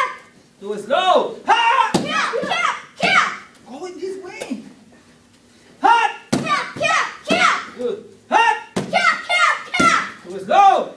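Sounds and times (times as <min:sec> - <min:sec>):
children shouting kiai calls: 0:00.0 - 0:00.3, 0:01.4 - 0:03.6, 0:05.8 - 0:10.4.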